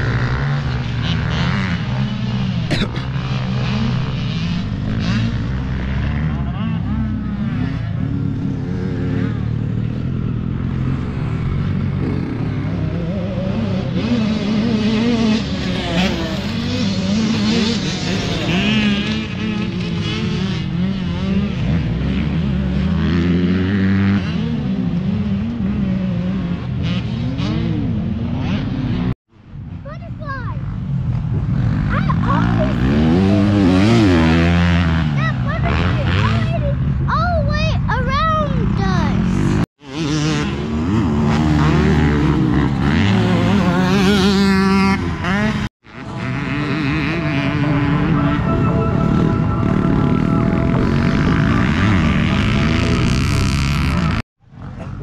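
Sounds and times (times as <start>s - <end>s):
dirt bike passing close: 0.0s - 37.2s, 38.6s - 55.0s
dirt bike engines revving: 0.0s - 55.0s.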